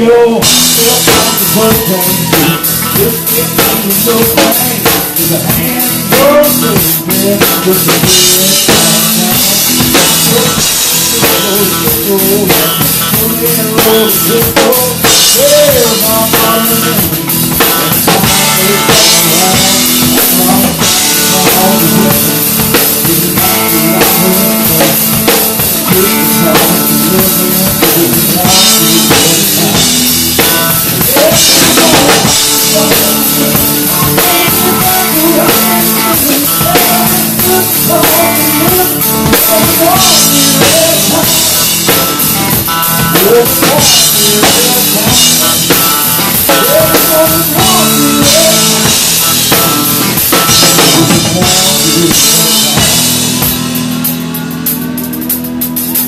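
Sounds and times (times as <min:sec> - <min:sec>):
country band playing: 0:00.0 - 0:56.0
drum kit: 0:00.0 - 0:56.0
sliding lead melody: 0:00.2 - 0:56.0.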